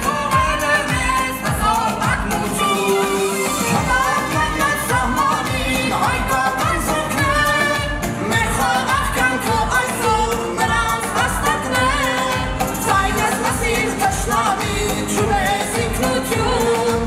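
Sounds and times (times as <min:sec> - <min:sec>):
boy singing into a microphone: 0:00.0 - 0:17.0.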